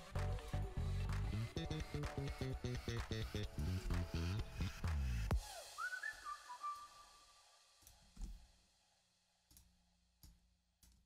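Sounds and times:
faint whistled notes: 0:05.4 - 0:07.6.

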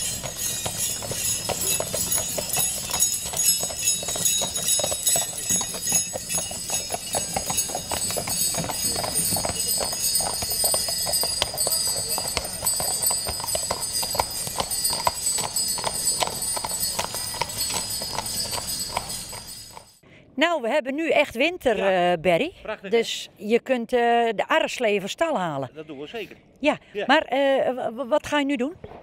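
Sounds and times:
horse hoofbeats on packed snow: 0:00.0 - 0:20.0
sleigh bells jingling: 0:00.0 - 0:20.0.

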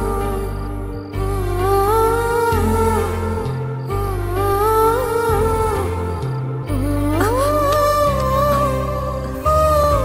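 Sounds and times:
hummed wordless melody: 0:00.0 - 0:10.0.

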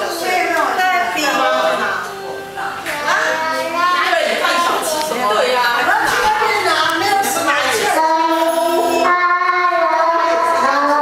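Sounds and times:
child singing karaoke: 0:00.0 - 0:11.0.

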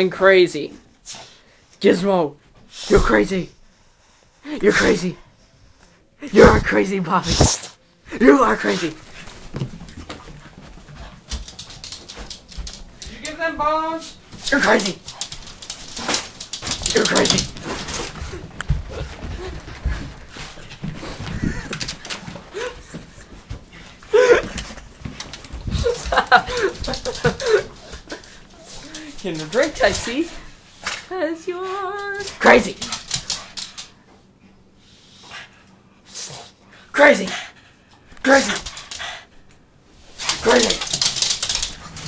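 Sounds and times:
dog scrabbling on floor: 0:09.0 - 0:13.2, 0:14.2 - 0:23.6, 0:24.6 - 0:31.0, 0:40.0 - 0:42.0
dog claws clicking on wooden floor: 0:11.0 - 0:13.4, 0:14.4 - 0:18.8, 0:32.2 - 0:34.0, 0:40.2 - 0:42.0.

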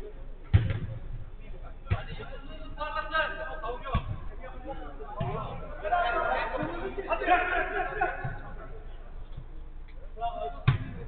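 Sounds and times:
football kick thump: 0:00.5 - 0:01.2, 0:10.6 - 0:11.0.

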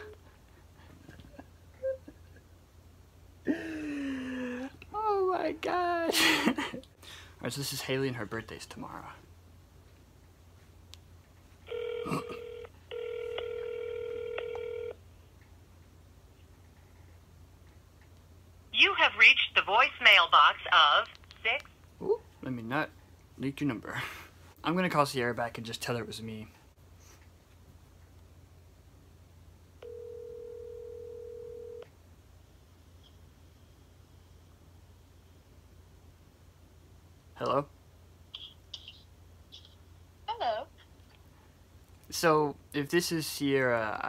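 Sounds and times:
telephone ringback tone: 0:11.7 - 0:15.0, 0:29.8 - 0:31.8.

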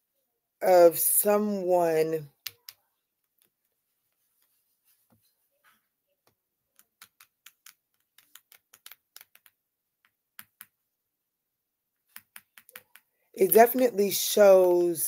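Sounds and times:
sharp clicks and taps: 0:02.3 - 0:03.7, 0:06.2 - 0:10.8, 0:12.0 - 0:13.1.

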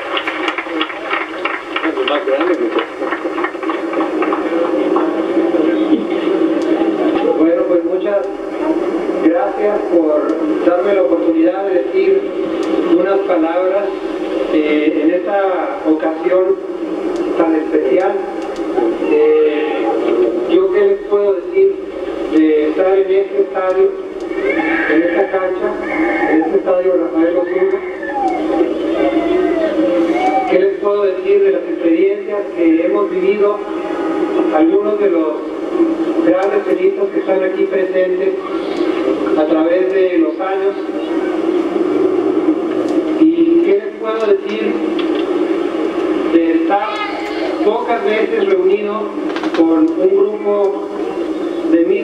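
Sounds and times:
crowd chatter: 0:00.0 - 0:52.0
man's drawn out hesitation: 0:04.7 - 0:41.5, 0:46.1 - 0:52.0.

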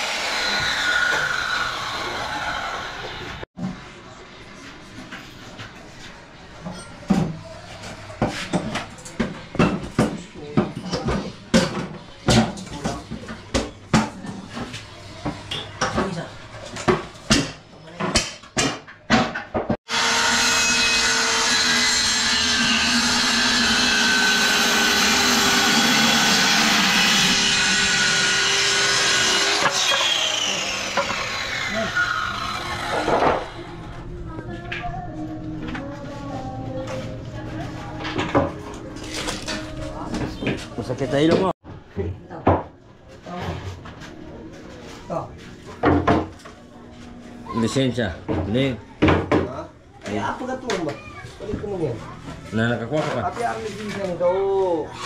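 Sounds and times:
circular saw cutting plywood: 0:00.0 - 0:03.4, 0:19.9 - 0:33.8.

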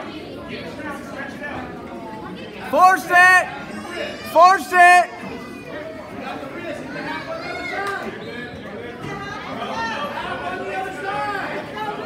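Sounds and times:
hubbub of chatter: 0:00.0 - 0:12.0.

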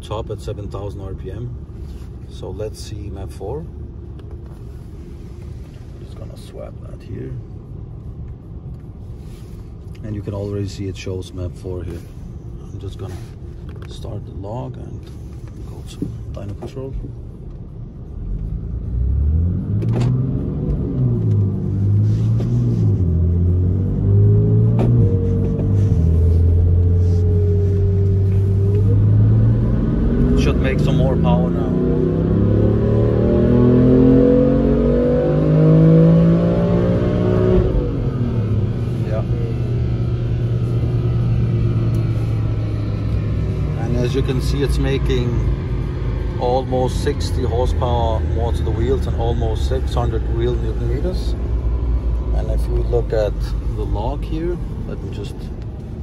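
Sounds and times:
car engine revving at full throttle: 0:18.1 - 0:56.0.

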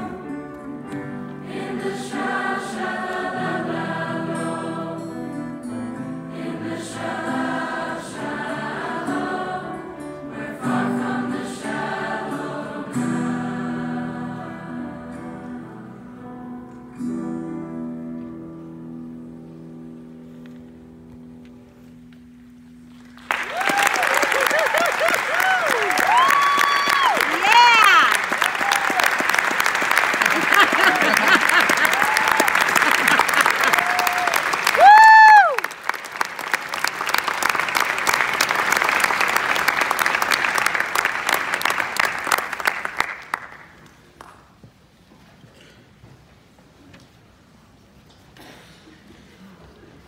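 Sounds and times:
audience clapping and cheering: 0:22.9 - 0:44.4
audience whooping: 0:23.2 - 0:36.0.

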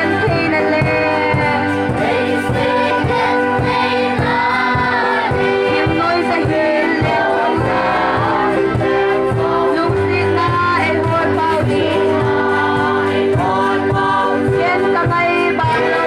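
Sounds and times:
group singing in chorus: 0:00.0 - 0:16.0
steady beat: 0:00.0 - 0:16.0.

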